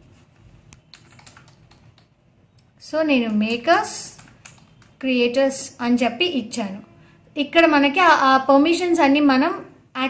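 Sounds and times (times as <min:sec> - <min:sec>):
keyboard key clicks: 0:00.8 - 0:02.7, 0:03.3 - 0:05.0.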